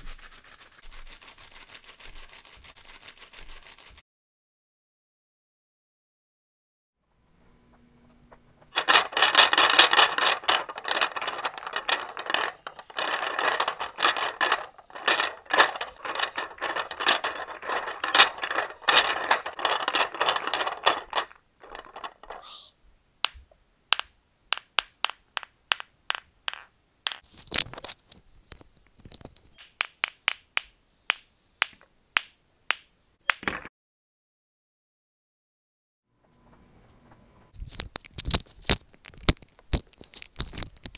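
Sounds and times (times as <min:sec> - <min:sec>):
pool balls clacking together: 0:08.6 - 0:22.4, 0:23.2 - 0:27.6, 0:28.5 - 0:33.7
hissy scrape: 0:22.3 - 0:22.8.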